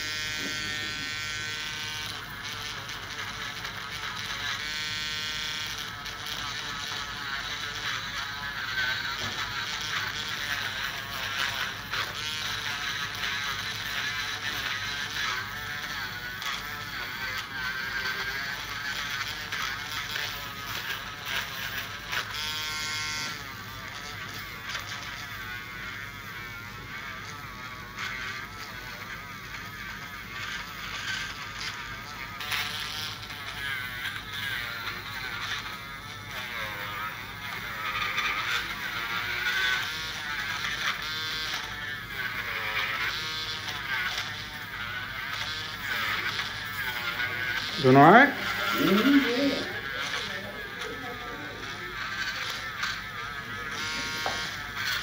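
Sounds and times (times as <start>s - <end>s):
nail drill buzzing and whining: 0.0s - 55.0s.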